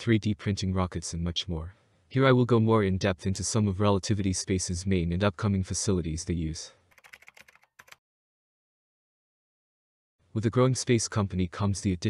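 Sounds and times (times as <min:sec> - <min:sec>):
keyboard typing clicks: 0:06.9 - 0:08.0.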